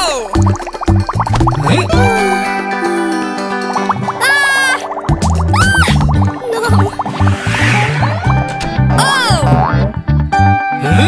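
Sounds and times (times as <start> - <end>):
cartoon background music with bass beat: 0.0 - 11.0
cartoon swoop sound effect: 5.5 - 9.6.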